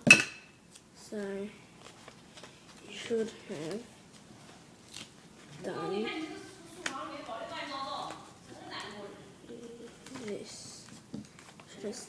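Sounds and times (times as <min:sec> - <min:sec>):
paper rustling: 0:01.8 - 0:05.5, 0:09.9 - 0:11.7.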